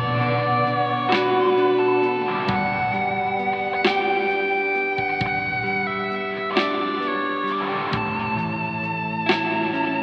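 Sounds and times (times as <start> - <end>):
electric guitar chords ringing: 0.0 - 10.0.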